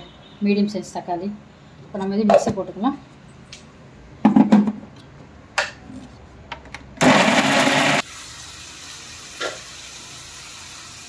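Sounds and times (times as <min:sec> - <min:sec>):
blender motor running: 0:07.0 - 0:08.1.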